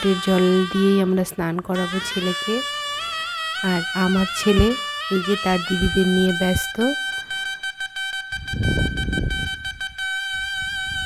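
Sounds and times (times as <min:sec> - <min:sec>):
wind instrument melody: 0:00.0 - 0:11.0.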